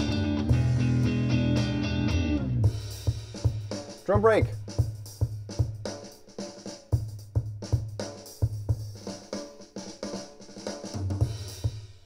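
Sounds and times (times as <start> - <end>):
funky drum kit groove: 0.0 - 12.0.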